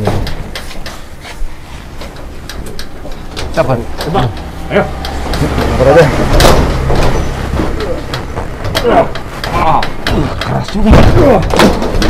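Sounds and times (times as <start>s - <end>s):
banging on metal door: 2.5s - 12.0s.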